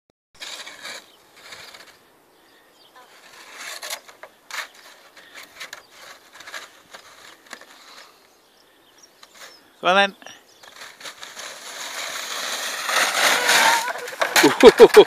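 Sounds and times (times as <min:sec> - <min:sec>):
crunching and scraping in snow: 0:00.4 - 0:08.3, 0:09.2 - 0:15.0.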